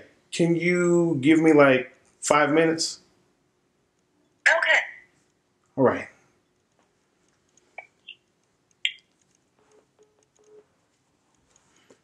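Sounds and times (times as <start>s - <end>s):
faint low phone beeps: 9.6s - 10.7s.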